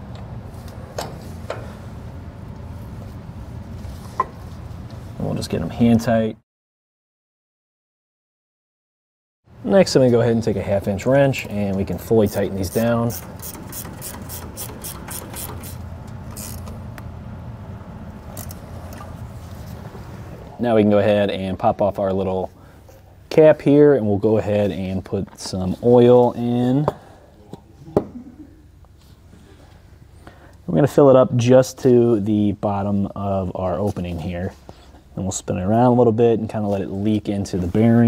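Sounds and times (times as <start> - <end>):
steady low hum: 0.0 - 6.4, 9.5 - 38.0
ratchet wrench clicking: 13.1 - 16.7.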